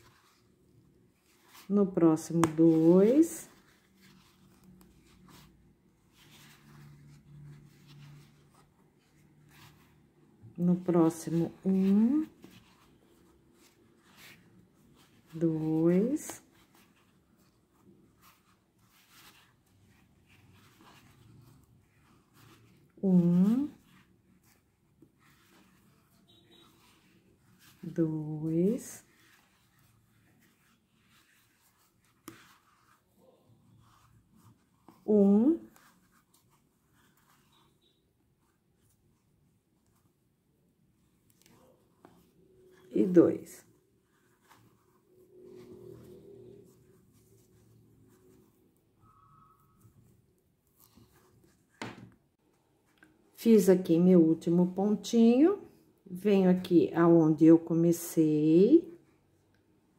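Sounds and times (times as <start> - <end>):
crochet hook scratching yarn: 0.0 - 52.1.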